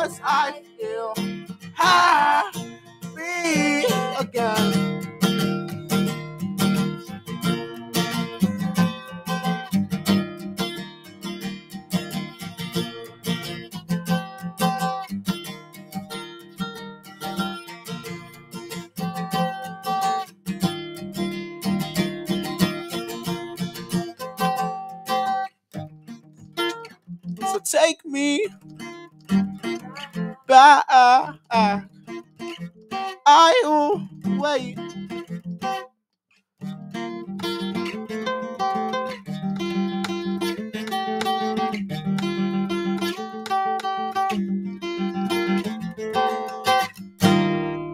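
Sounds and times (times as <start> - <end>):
acoustic guitar strumming: 0.0 - 35.8, 36.6 - 47.9.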